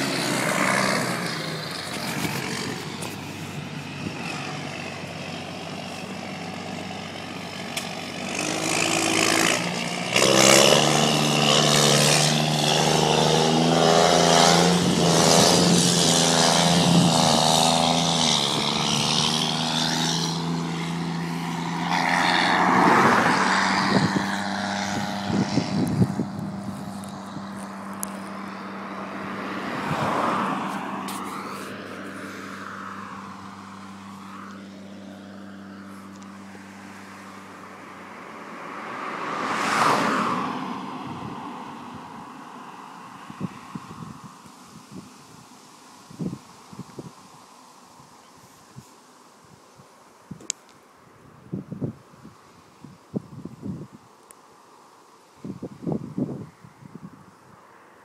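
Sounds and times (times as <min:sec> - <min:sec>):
loud tractor diesel engine: 0:00.0 - 0:13.2.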